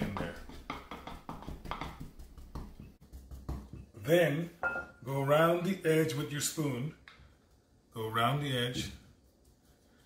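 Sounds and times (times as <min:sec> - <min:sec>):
wooden pestle knocking in mortar: 0:00.0 - 0:04.0.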